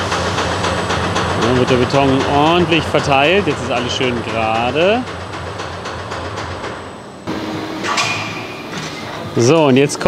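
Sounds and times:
machine clank: 0:00.0 - 0:09.6
machinery rumbling: 0:00.0 - 0:10.0
steady machine hum: 0:00.0 - 0:10.0.

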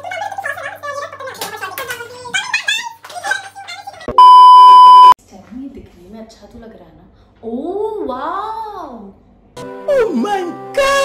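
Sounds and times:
high test tone beep: 0:04.1 - 0:05.2.

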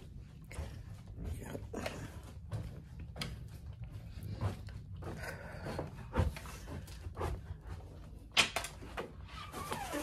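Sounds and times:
person breathing hard: 0:04.0 - 0:07.9.

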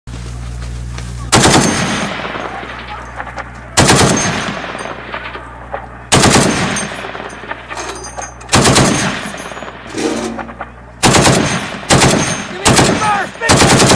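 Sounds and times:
gunfire echo: 0:01.3 - 0:07.7, 0:08.5 - 0:13.9
heavy machine gun bursts: 0:01.3 - 0:13.9.

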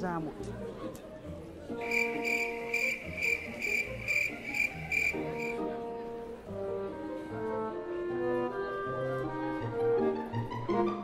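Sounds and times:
soft background music: 0:00.0 - 0:11.0
cricket chirping: 0:01.8 - 0:05.6.

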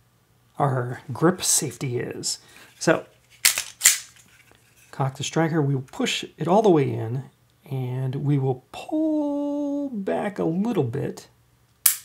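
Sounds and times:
pistol slide clacks: 0:03.4 - 0:04.2.

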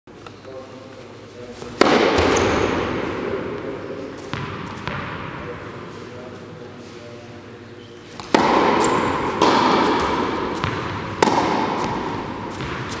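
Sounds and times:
loud bang in a large hall: 0:01.8 - 0:03.7, 0:08.3 - 0:13.0
sharp knocks: 0:08.3 - 0:12.7.

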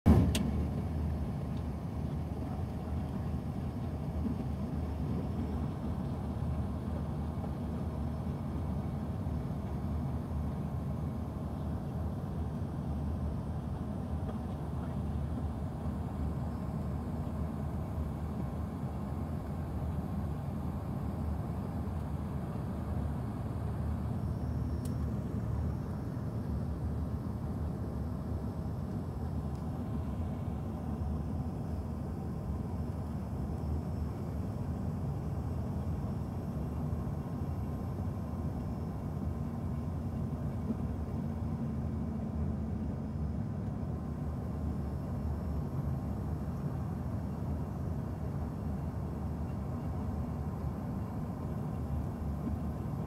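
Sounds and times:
airliner cabin rumble: 0:00.0 - 0:53.0
brief click: 0:00.2 - 0:00.5
faint short click: 0:24.8 - 0:25.1.

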